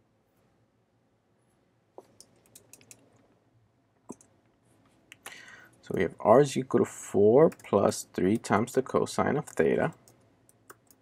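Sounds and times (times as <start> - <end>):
keyboard typing: 2.0 - 3.0.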